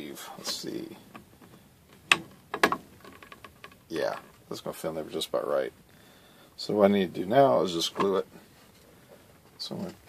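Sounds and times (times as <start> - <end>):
plastic clicking against plastic: 1.1 - 4.3.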